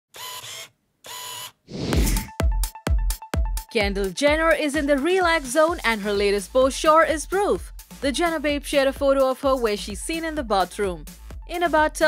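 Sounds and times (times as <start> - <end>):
rising whoosh: 1.7 - 2.3.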